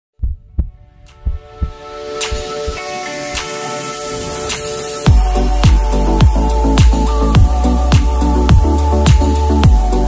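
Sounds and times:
heartbeat-like double thump: 0:00.2 - 0:02.8.

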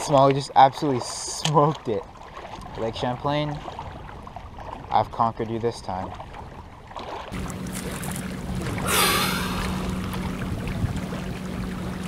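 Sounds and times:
waves lapping against rocks: 0:00.0 - 0:12.0
steady low hum: 0:07.4 - 0:12.0.

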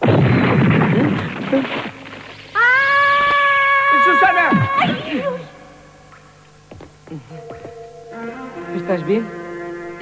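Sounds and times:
cartoon girl screaming: 0:02.6 - 0:05.4.

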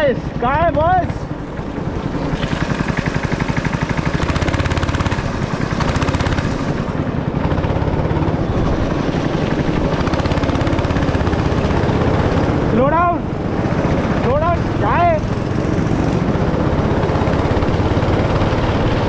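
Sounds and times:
go-kart engine running: 0:00.0 - 0:19.0.

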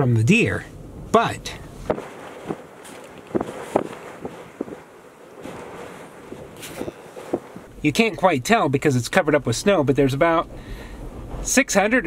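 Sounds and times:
strong wind blowing: 0:00.7 - 0:08.2
wind buffeting microphone: 0:00.7 - 0:12.0.

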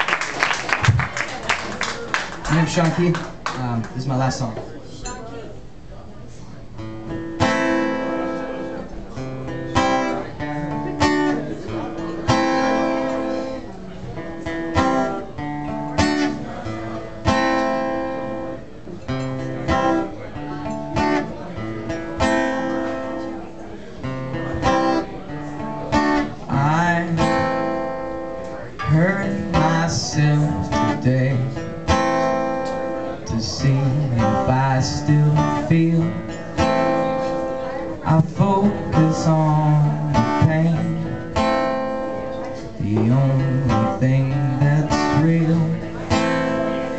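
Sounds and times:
acoustic guitar strumming: 0:06.8 - 0:46.9.

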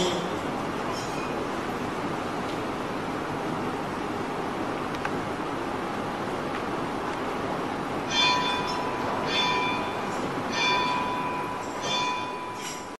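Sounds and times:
steady hiss: 0:00.0 - 0:13.0
metal bell strikes: 0:08.1 - 0:13.0.

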